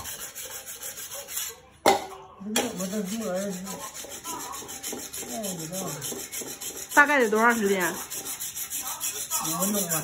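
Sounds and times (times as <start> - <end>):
cleaver rubbing on whetstone: 0.0 - 1.6, 2.7 - 10.0.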